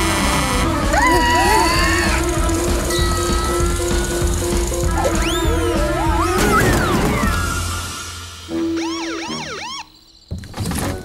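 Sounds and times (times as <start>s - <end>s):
cartoon police siren: 4.9s - 7.8s.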